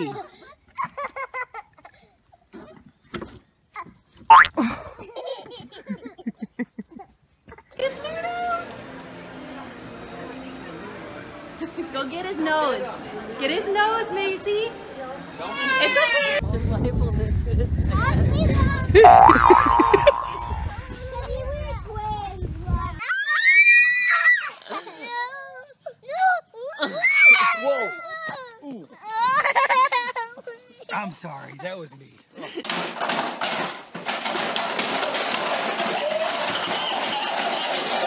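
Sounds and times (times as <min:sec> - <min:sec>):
child laughing: 0:00.0 - 0:02.5, 0:04.3 - 0:07.8, 0:19.0 - 0:21.5, 0:24.2 - 0:30.9, 0:35.8 - 0:38.0
cartoon boing: 0:04.3 - 0:04.6, 0:19.0 - 0:20.4
child squealing: 0:19.0 - 0:20.6, 0:23.0 - 0:24.6, 0:26.1 - 0:28.5.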